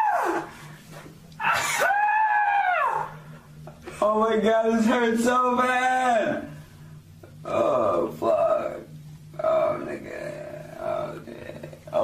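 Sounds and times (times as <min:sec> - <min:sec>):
high wail: 0:00.0 - 0:00.5, 0:01.4 - 0:03.2.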